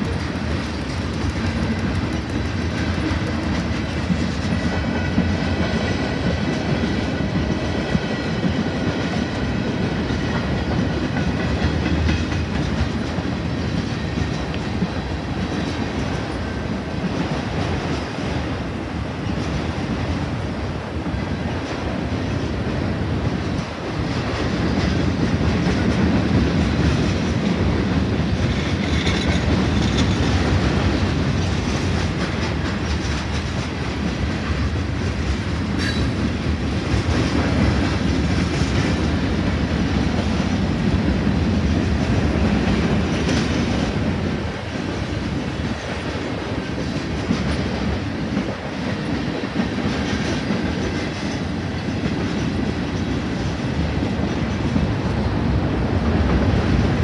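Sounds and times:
freight train wheels rumbling and clacking: 0.0 - 57.0.

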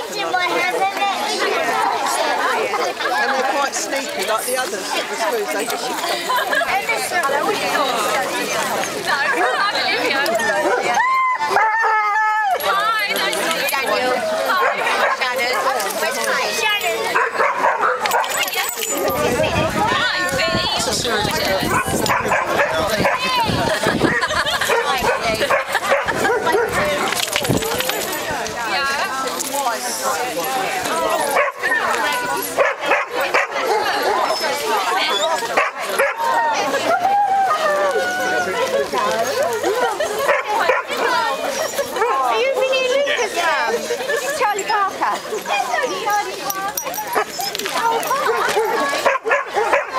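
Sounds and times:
people chatting: 0.0 - 49.9
people talking: 0.0 - 49.9
dogs barking: 14.5 - 16.4, 17.1 - 18.4, 21.7 - 23.4, 24.5 - 27.1, 31.2 - 31.8, 32.5 - 34.6, 35.5 - 36.3, 40.2 - 41.3, 47.0 - 49.9
dogs whining and yipping: 33.8 - 35.5, 46.8 - 49.6.

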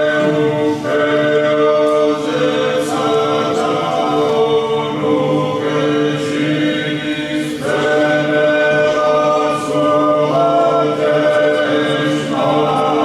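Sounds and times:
men singing a cappella chant: 0.0 - 13.0.

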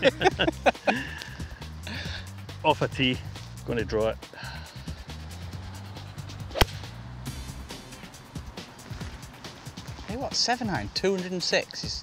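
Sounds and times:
background music: 0.0 - 12.0
golf club striking ball: 6.5 - 8.0.

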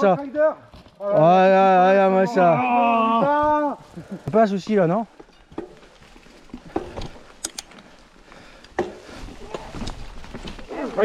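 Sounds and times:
bike tyres rolling on dirt: 0.2 - 11.0
bike knocking and rattling: 4.2 - 11.0.

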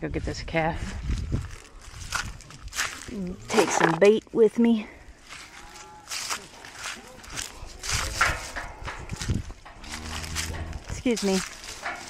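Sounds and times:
footsteps crunching on dry leaves: 1.0 - 4.0, 5.2 - 12.0
cow mooing: 9.8 - 10.9.

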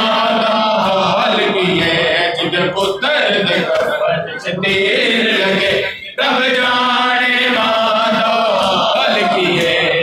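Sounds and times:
men chanting a lament: 0.0 - 10.0.

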